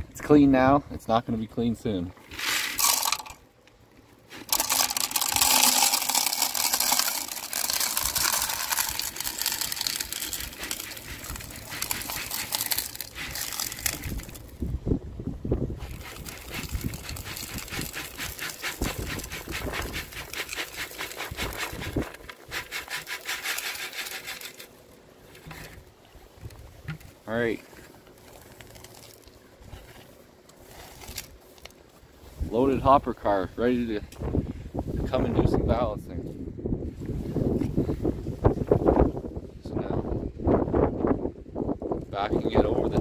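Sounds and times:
gravel clattering into model car: 2.3s - 3.4s, 4.3s - 14.5s, 15.8s - 25.8s.

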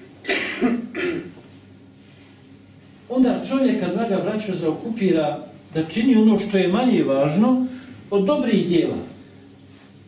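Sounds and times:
man clearing throat: 0.2s - 1.4s
man coughing: 0.2s - 1.4s.

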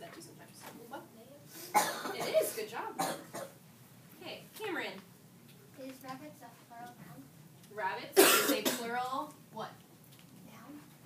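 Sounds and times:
sharp cough: 1.7s - 3.6s, 8.2s - 8.9s.

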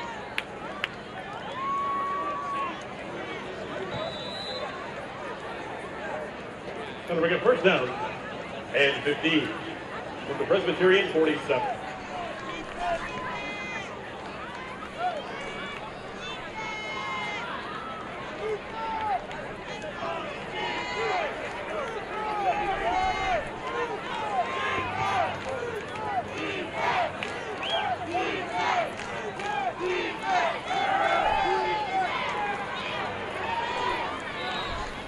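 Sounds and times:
crowd shouting and calling out: 0.0s - 35.0s.

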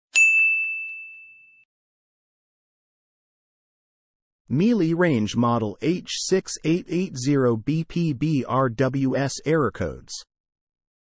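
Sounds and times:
bright bell-like ding: 0.1s - 1.7s.

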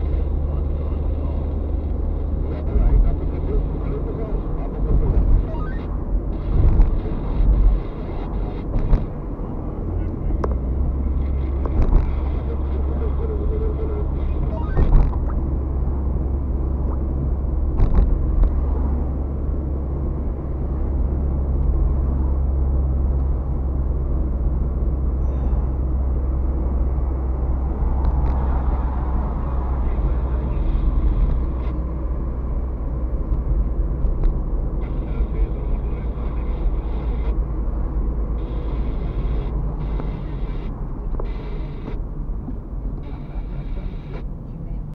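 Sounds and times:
engine and road drone: 0.0s - 44.9s.

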